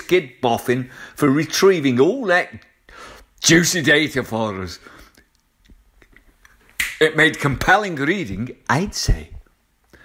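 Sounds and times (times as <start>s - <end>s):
man speaking: 0.0s - 2.8s, 3.4s - 5.1s, 6.8s - 9.5s
man breathing in: 2.9s - 3.3s.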